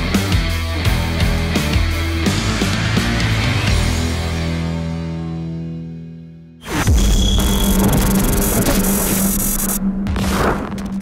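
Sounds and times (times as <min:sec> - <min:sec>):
dense noisy whoosh: 0:06.8 - 0:11.0
steady low drone: 0:06.9 - 0:11.0.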